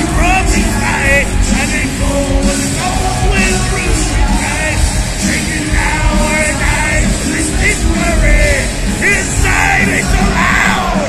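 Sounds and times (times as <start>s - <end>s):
heavy metal band playing live: 0.0s - 11.0s
yelled vocals: 0.0s - 11.0s.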